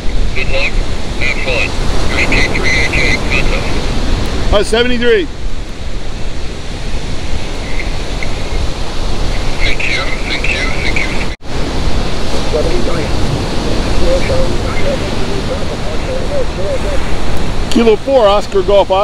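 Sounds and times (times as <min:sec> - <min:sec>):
faint voices: 0:00.0 - 0:03.8, 0:09.2 - 0:11.4, 0:12.4 - 0:19.0
wind on microphone: 0:00.0 - 0:18.6
surf: 0:00.0 - 0:19.0.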